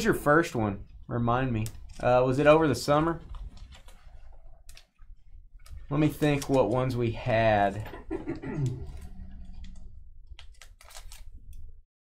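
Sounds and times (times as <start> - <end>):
low background hum: 0.0 - 11.8
man coughing: 7.8 - 9.1.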